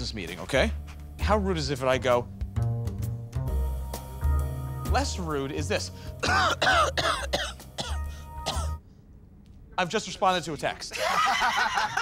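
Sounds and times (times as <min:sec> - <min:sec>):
quiet background music: 0:00.0 - 0:08.8
man coughing: 0:06.2 - 0:08.8.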